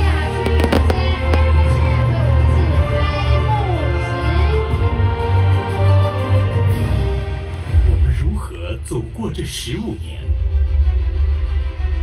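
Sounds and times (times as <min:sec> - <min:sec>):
pyrotechnic bangs: 0:00.3 - 0:02.0.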